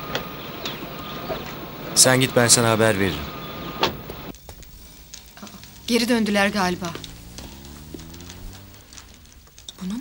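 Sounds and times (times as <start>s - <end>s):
wood fire crackling: 0.0s - 10.0s.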